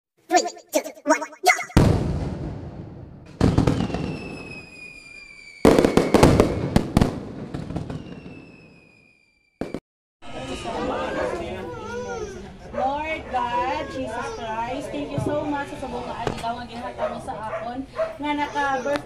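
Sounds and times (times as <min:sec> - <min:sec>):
firework bangs crackling: 0:01.8 - 0:09.8
firework whistle sliding down: 0:03.7 - 0:06.8, 0:07.8 - 0:09.8
voices: 0:10.3 - 0:19.0.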